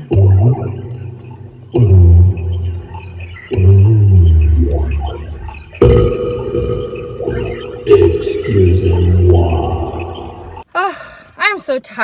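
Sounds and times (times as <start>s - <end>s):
voices moaning low: 0.0s - 10.6s.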